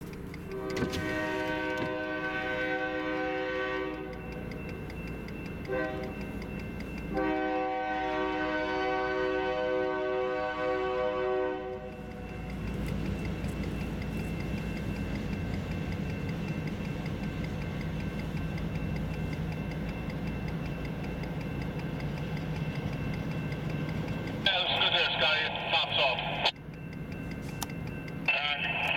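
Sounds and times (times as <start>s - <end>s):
train rumbling past: 0.0s - 28.9s
crossing bell dinging: 0.1s - 28.9s
train horn blast: 0.5s - 4.2s, 5.6s - 6.2s, 7.1s - 12.4s.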